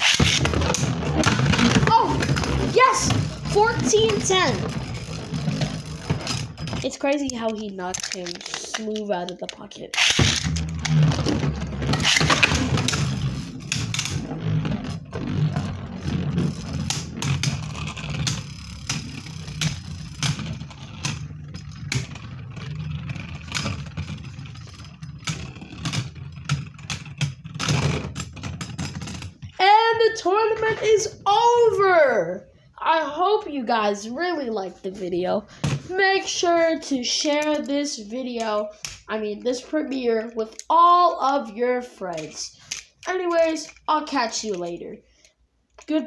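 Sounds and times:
spinning tops whirring: 0:00.0 - 0:06.8, 0:10.0 - 0:27.4
spinning tops clicking and knocking: 0:00.0 - 0:29.5.

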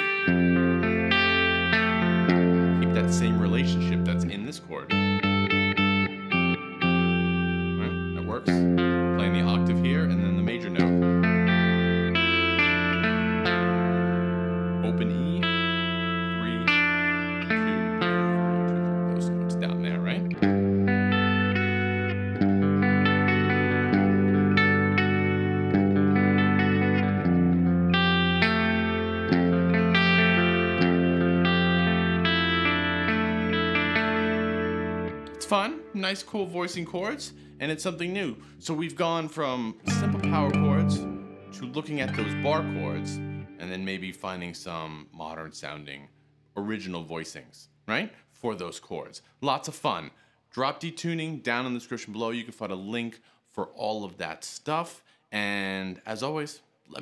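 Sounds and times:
electric guitar chords: 0:00.0 - 0:44.9.

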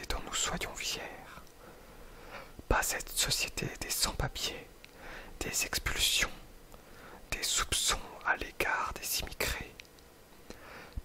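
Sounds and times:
person whispering: 0:00.0 - 0:01.5, 0:02.7 - 0:04.7, 0:05.4 - 0:06.5, 0:07.3 - 0:09.8.

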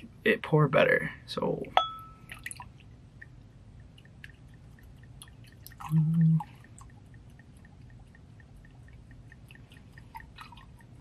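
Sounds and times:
small drips: 0:01.9 - 0:11.0.

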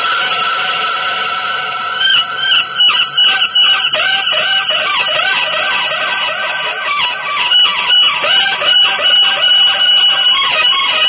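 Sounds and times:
electric guitar playing jazz: 0:00.0 - 0:11.0.

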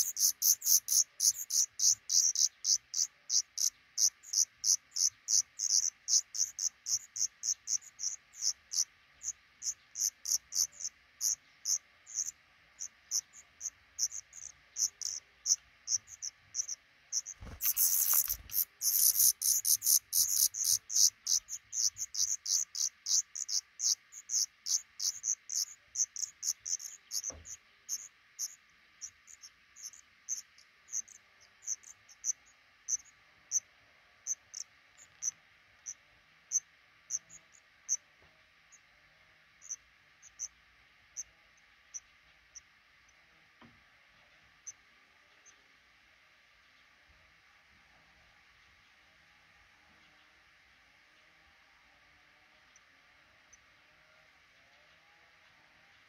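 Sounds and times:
nestlings begging calls: 0:00.0 - 0:33.1.

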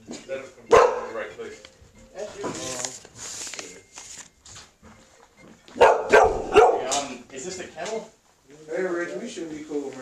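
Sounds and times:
dog barking: 0:00.7 - 0:01.2, 0:05.8 - 0:07.0.

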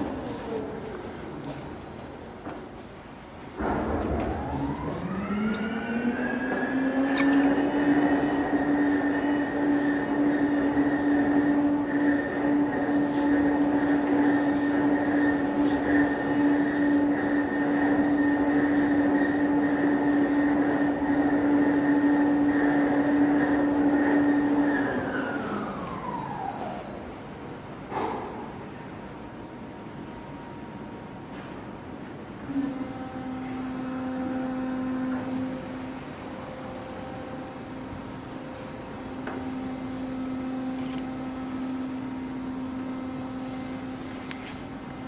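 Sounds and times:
ship's horn long blast: 0:04.6 - 0:25.2, 0:32.4 - 0:44.2.

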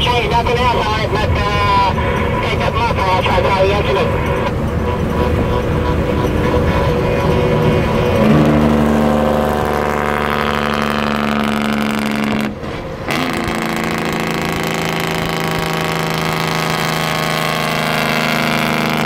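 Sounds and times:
diesel engine brake exhaust bark: 0:04.1 - 0:16.9.

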